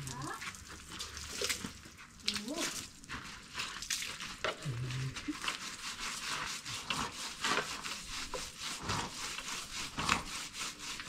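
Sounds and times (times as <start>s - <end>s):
wheel being scrubbed by hand: 2.8s - 11.0s.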